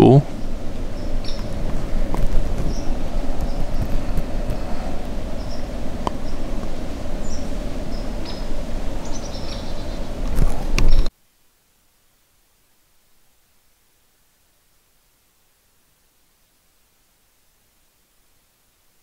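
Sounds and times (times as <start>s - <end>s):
small birds chirping: 0.0s - 11.1s
wind buffeting microphone: 0.3s - 11.1s.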